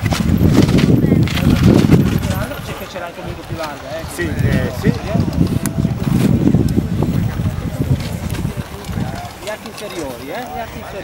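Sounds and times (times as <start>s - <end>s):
low rumble on microphone: 0.0s - 9.5s
indistinct voices talking quietly: 0.6s - 11.0s.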